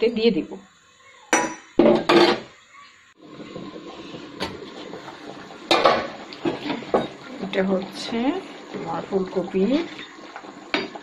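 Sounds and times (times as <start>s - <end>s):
curry bubbling: 3.1s - 11.0s.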